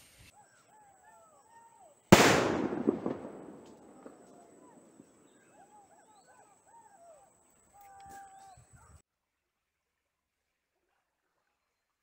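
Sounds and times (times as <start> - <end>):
faint bird calls: 0.3 - 2.1, 3.7 - 9.0
loud echoing bang: 2.1 - 5.3.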